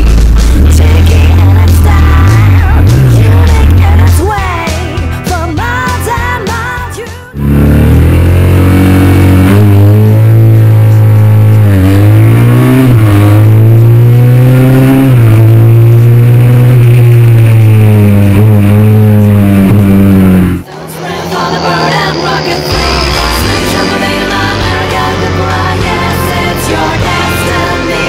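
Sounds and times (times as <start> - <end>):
motorcycle engine at full throttle: 0.0 - 5.2, 7.3 - 28.0.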